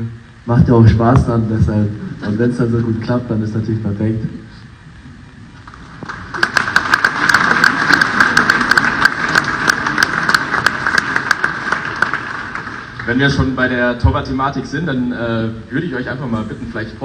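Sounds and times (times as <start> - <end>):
group applause: 5.6 - 13.7.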